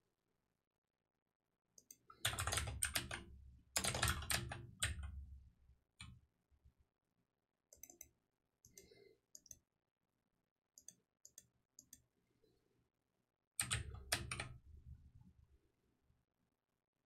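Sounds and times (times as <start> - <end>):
computer keyboard typing: 1.8 - 3.2, 3.8 - 5.2, 13.6 - 14.6.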